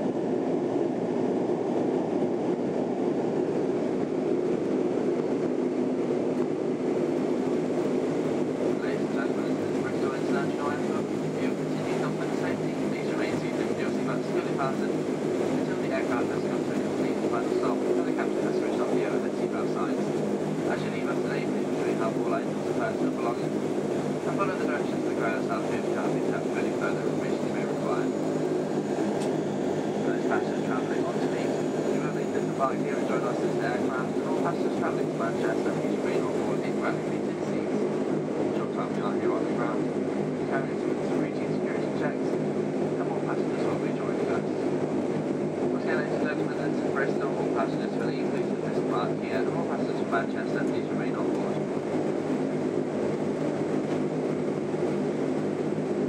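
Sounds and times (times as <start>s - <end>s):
turboprop engines droning: 0.0s - 56.0s.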